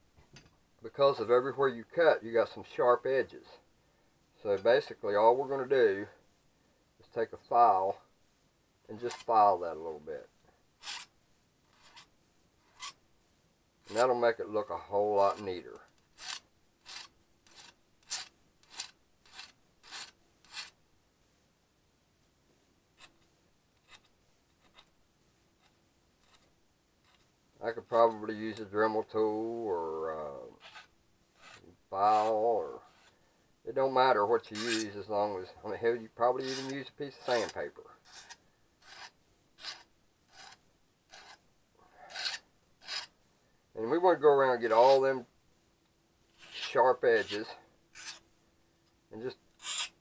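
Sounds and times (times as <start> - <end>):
file rasping on sheet metal: 10.8 - 11.1, 16.2 - 20.7, 30.6 - 33.2, 34.5 - 35.0, 36.4 - 41.4, 42.1 - 43.1, 46.4 - 48.2, 49.6 - 50.0.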